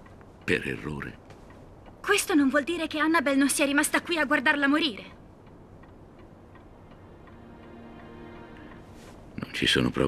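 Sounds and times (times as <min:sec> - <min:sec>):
clock ticking: 0:00.0 - 0:10.0
soft background music: 0:05.8 - 0:10.0.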